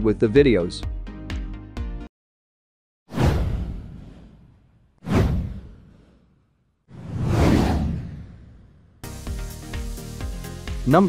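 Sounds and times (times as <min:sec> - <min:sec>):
whoosh sound effect: 0:03.1 - 0:08.7.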